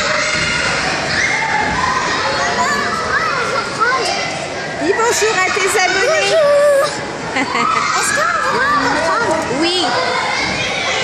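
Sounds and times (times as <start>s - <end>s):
children calling and chattering: 0.0s - 11.0s.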